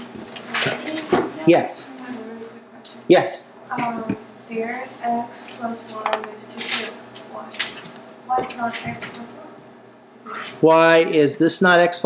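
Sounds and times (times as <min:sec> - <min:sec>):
voices in a classroom: 0:00.0 - 0:12.0.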